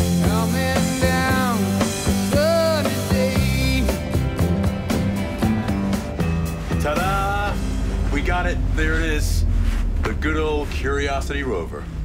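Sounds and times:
vehicle rumble from inside cabin: 6.8 - 12.0.

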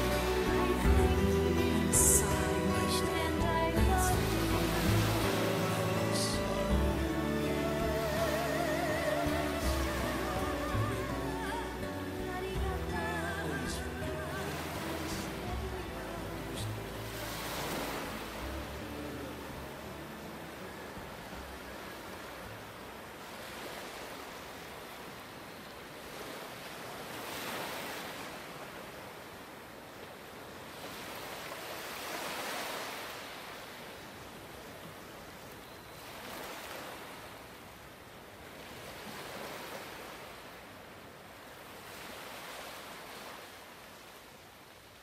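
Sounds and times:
ocean waves washing in: 0.0 - 45.0.

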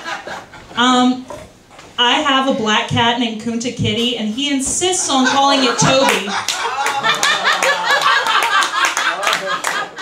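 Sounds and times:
voices: 2.0 - 8.4
audience clapping: 6.0 - 10.0.

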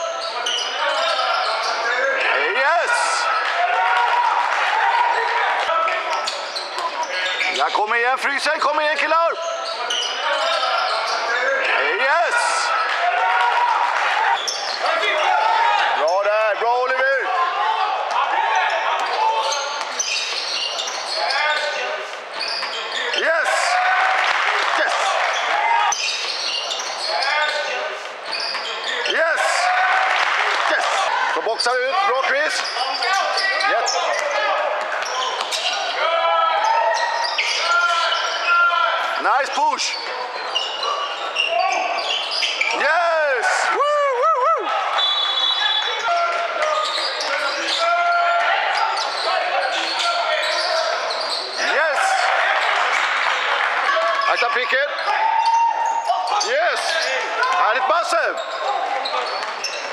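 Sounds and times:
sneakers squeaking: 0.0 - 43.7, 44.7 - 59.9
crowd cheering: 0.0 - 59.9
players and spectators shouting: 0.0 - 59.9.

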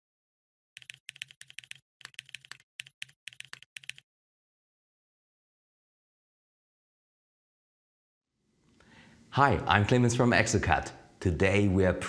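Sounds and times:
keyboard typing: 0.8 - 4.0.

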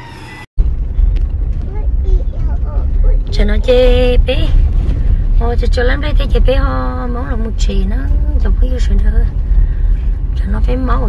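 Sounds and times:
car rumbling on dirt road: 0.6 - 11.0.

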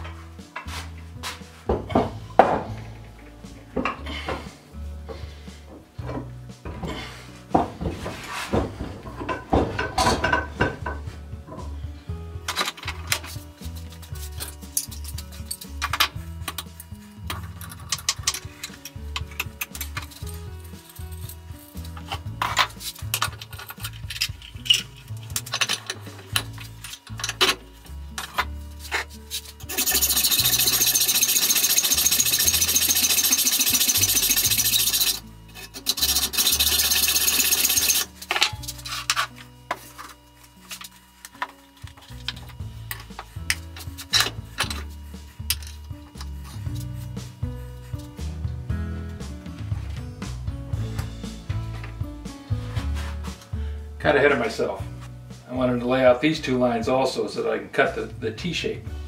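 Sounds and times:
hacksaw cutting metal: 28.2 - 39.4.

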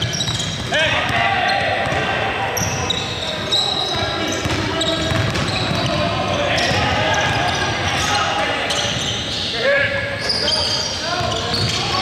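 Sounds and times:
players calling out: 0.0 - 12.0
shoes on hardwood court: 3.8 - 8.1
basketball bouncing: 4.4 - 7.6.

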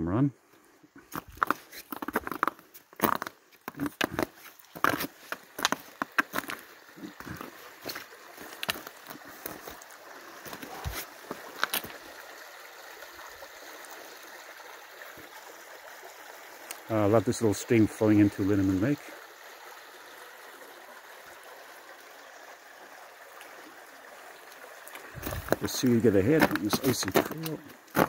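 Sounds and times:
small stream flowing: 0.2 - 28.0
footsteps on rocky icy trail: 1.0 - 12.0, 24.9 - 28.0.

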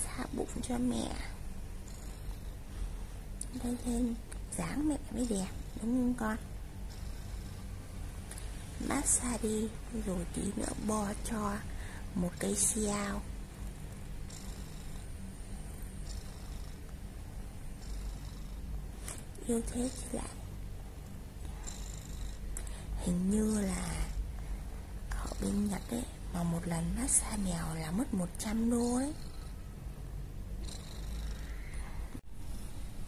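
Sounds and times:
cat purring: 0.0 - 33.0.

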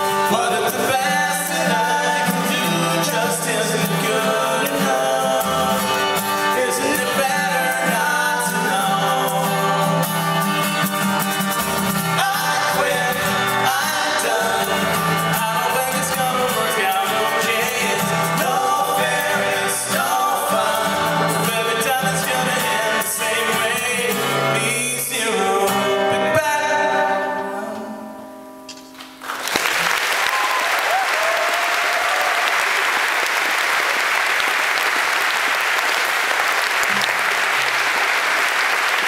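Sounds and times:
men singing together: 0.0 - 10.2, 12.0 - 27.9
acoustic guitar strumming: 0.0 - 29.2.

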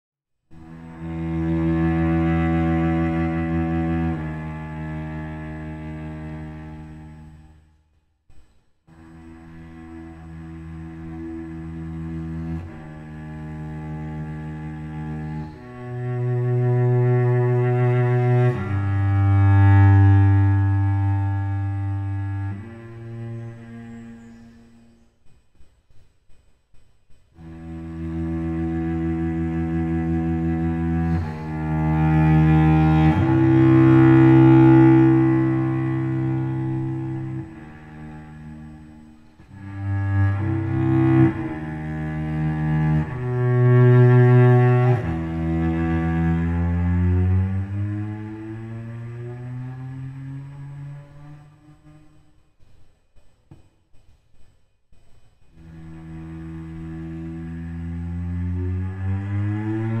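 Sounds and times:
cello playing bowed notes: 0.5 - 7.7, 8.9 - 25.2, 27.4 - 52.5, 55.5 - 60.0.

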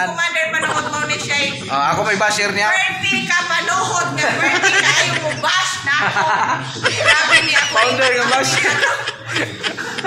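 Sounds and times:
man chuckling and laughing: 6.1 - 10.0.

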